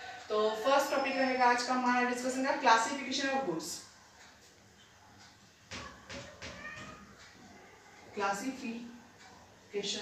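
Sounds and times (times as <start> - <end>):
marker squeaking on whiteboard: 5.7 - 7.4.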